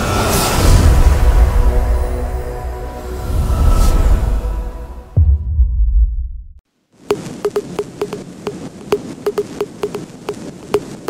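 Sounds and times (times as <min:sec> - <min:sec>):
deep bass boom: 0:05.2 - 0:06.6.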